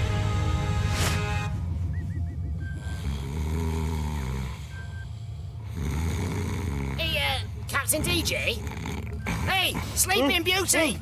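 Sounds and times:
comic snoring: 2.7s - 10.2s.

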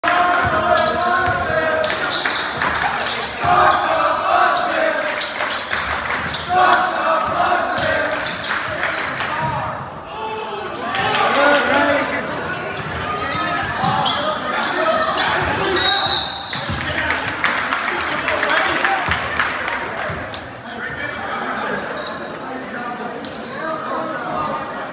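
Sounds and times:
shouting voices echoing: 0.0s - 21.8s.

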